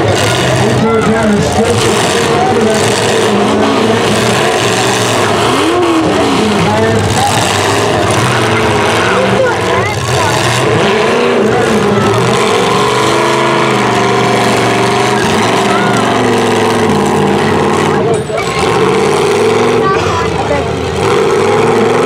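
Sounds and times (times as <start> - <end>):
car engines revving hard: 0.0 - 22.0.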